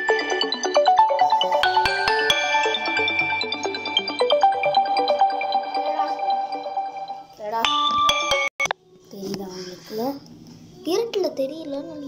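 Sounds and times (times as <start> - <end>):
music with held notes: 0.0 - 8.6.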